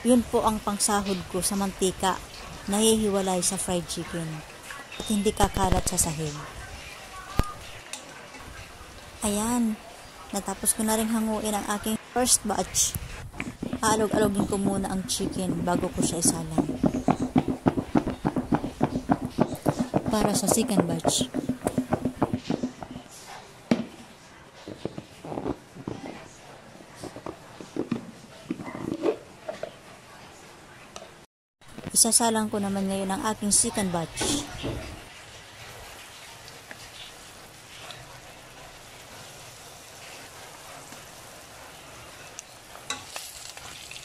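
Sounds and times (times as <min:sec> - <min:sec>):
plastic knocks and scrapes: 0:13.3 - 0:23.1, 0:27.0 - 0:29.7.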